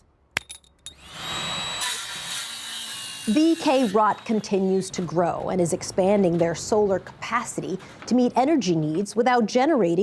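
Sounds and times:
circular saw whining: 0:01.0 - 0:05.0.

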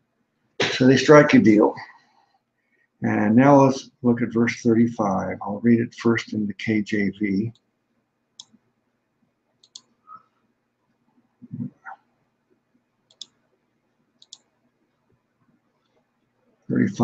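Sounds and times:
faint sharp clicks: 0:09.6 - 0:10.0, 0:13.1 - 0:13.4, 0:14.2 - 0:14.5.

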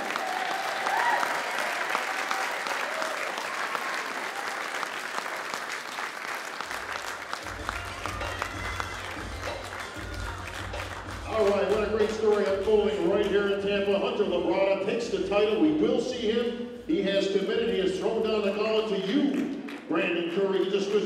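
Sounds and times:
audience applauding: 0:00.0 - 0:13.4
music playing: 0:06.6 - 0:19.6.

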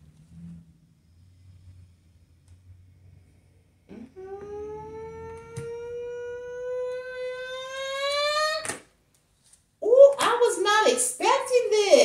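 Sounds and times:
woman holding rising vocal note: 0:03.9 - 0:08.6.

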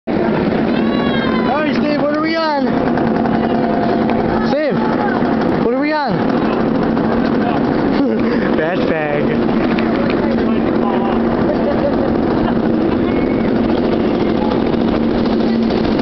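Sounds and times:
roller coaster rumbling on track: 0:00.1 - 0:16.0
riders calling out: 0:00.2 - 0:16.0.

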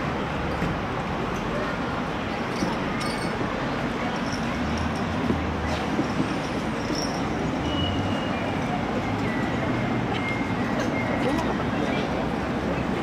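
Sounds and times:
road traffic: 0:00.0 - 0:13.0
people talking: 0:01.3 - 0:06.2, 0:08.0 - 0:13.0.

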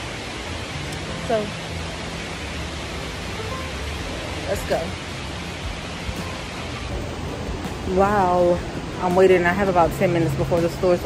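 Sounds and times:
even hiss: 0:00.0 - 0:11.0.

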